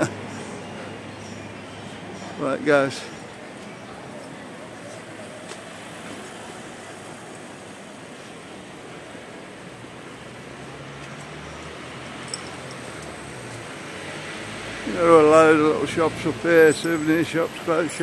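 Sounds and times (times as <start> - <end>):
faint voices: 0.0 - 9.6
road traffic hum: 0.0 - 18.0.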